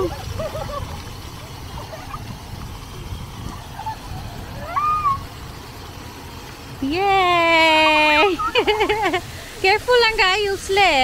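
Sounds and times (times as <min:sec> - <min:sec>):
wind noise on microphone: 0:00.0 - 0:05.7
fountain jets hissing: 0:00.0 - 0:11.0.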